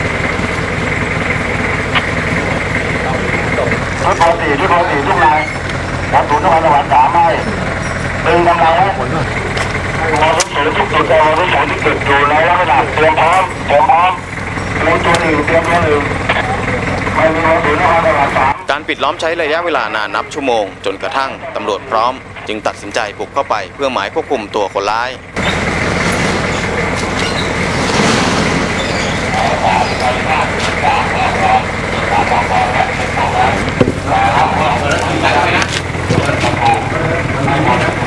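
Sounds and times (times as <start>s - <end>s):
constant high-pitched tone: 0.0s - 27.7s, 28.8s - 38.0s
indistinct voices talking: 0.0s - 38.0s
steady background noise: 0.0s - 38.0s
vehicle engine idling: 0.0s - 38.0s.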